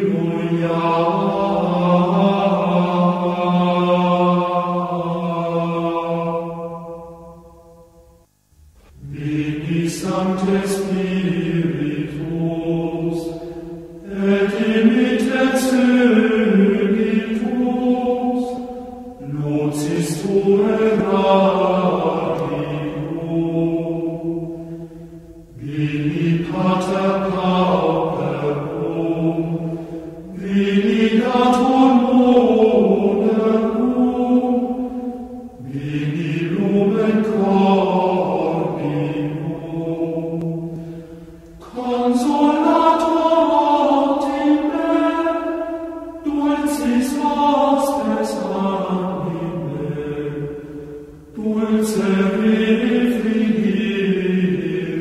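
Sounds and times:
person singing devotional chant: 0:00.0 - 0:07.8, 0:08.8 - 0:55.0.

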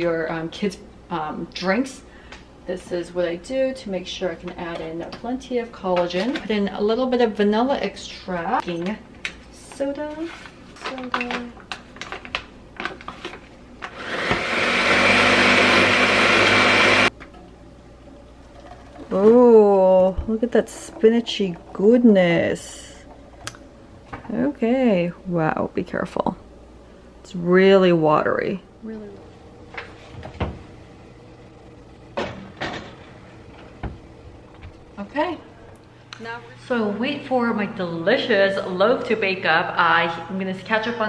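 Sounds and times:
faint steady hum: 0:00.0 - 0:41.0
blender blending: 0:13.8 - 0:17.1.

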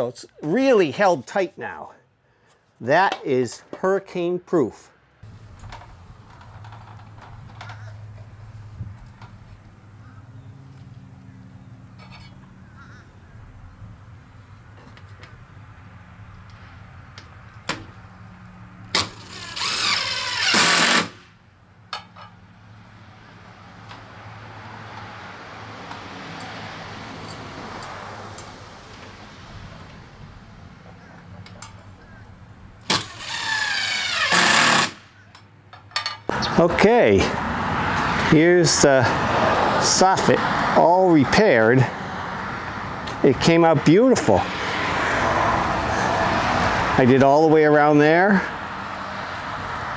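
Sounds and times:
cordless driver driving screws: 0:18.9 - 0:21.2, 0:32.9 - 0:35.0.

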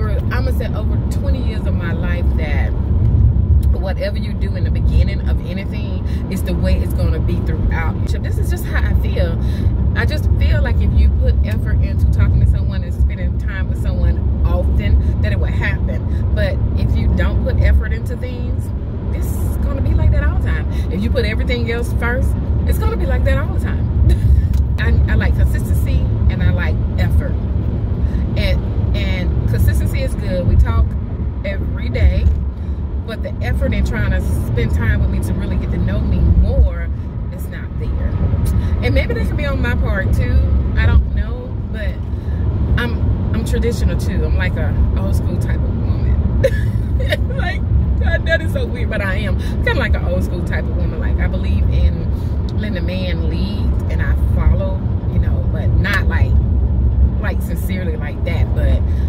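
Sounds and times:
woman talking: 0:00.0 - 0:02.8, 0:03.6 - 0:27.4, 0:28.2 - 0:32.3, 0:33.1 - 0:42.1, 0:42.8 - 0:56.4, 0:57.2 - 0:59.0
car road and engine rumble: 0:00.0 - 0:59.0.

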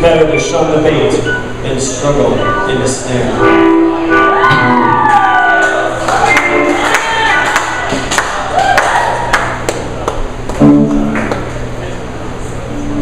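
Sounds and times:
live band with sliding high tones: 0:00.0 - 0:08.1, 0:10.5 - 0:11.4, 0:12.4 - 0:13.0
audience crowd noise: 0:02.7 - 0:13.0.

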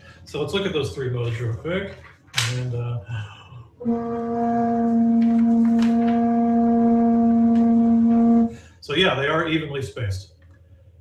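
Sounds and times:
wooden pipe steady note: 0:03.8 - 0:08.8.

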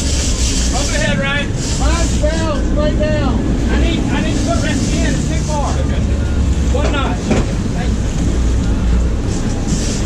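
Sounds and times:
boat engine rumble: 0:00.0 - 0:10.0
rush of wind and water: 0:00.0 - 0:10.0.

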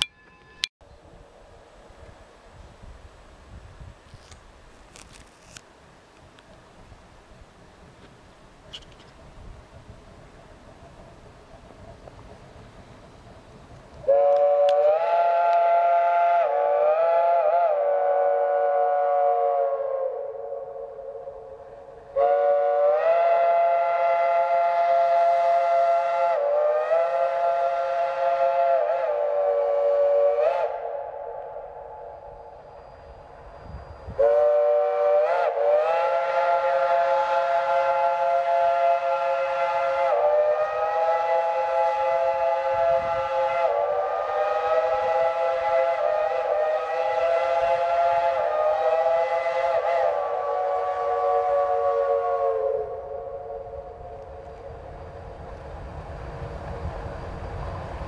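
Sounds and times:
steam locomotive chime whistle: 0:14.0 - 0:31.1, 0:31.9 - 0:55.3.

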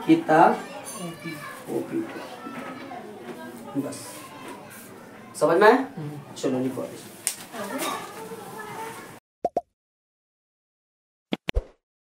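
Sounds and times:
quick pops sound effect: 0:09.4 - 0:09.7.

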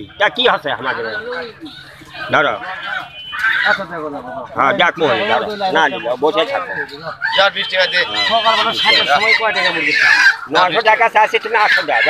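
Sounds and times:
chickens calling: 0:00.0 - 0:12.0.

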